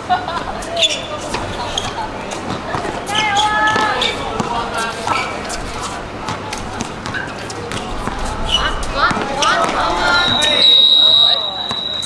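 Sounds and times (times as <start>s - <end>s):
voices calling out: 0.0s - 12.0s
basketballs bouncing on hard court: 1.3s - 5.2s, 6.2s - 10.4s.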